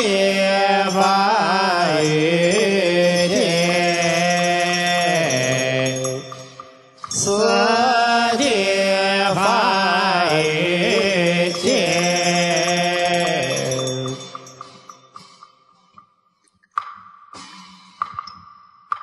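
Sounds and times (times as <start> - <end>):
voices chanting: 0.0 - 15.0.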